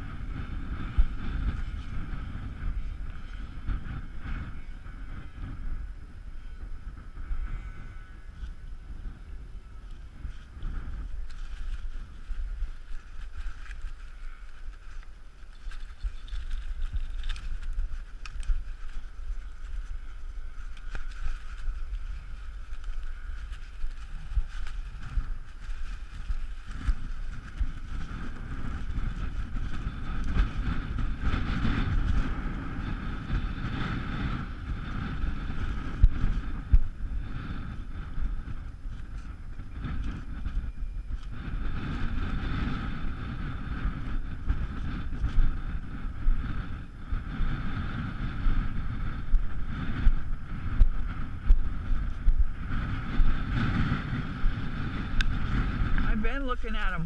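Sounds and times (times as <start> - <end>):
wind buffeting microphone: 0.0 - 57.0
model airplane motor humming: 7.6 - 46.8.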